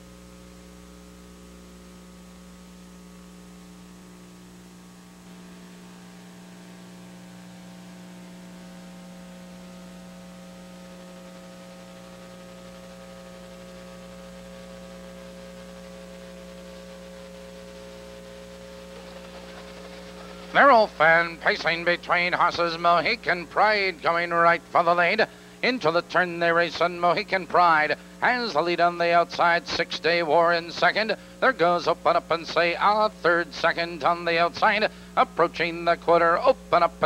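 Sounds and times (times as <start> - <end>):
electrical hum: 0.0 - 37.0.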